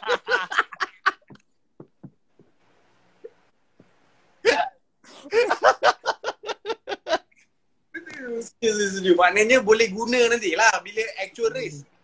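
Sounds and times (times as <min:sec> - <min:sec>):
man laughing hard: 0:00.0 - 0:01.3, 0:04.5 - 0:07.2.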